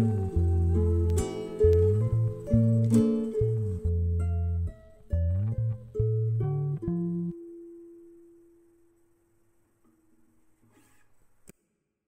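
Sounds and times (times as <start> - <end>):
plucked-string background music: 0.0 - 8.6.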